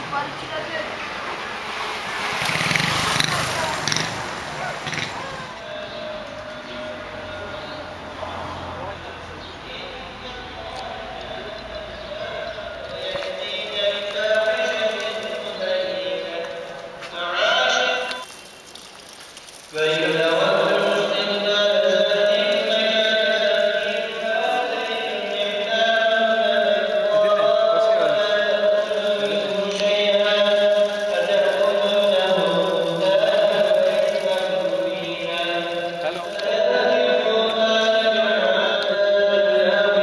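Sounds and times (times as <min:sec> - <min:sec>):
chanting with long held notes: 0:05.5 - 0:18.2, 0:19.7 - 0:40.0.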